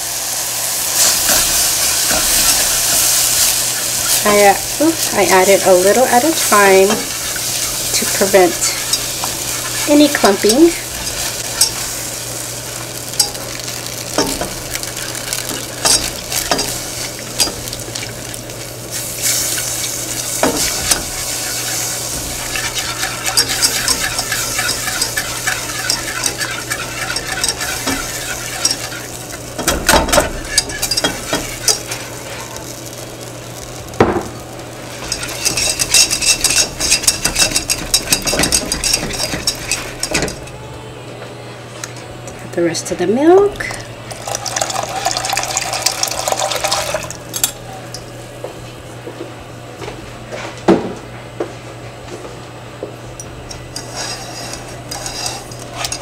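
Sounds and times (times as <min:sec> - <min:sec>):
whisk scraping a metal saucepan: 0:00.9 - 0:12.2, 0:13.1 - 0:32.7, 0:34.9 - 0:40.5, 0:53.7 - 0:56.0.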